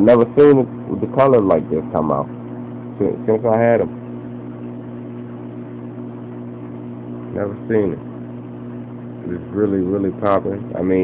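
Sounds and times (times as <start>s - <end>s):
low electric hum: 0.0s - 11.0s.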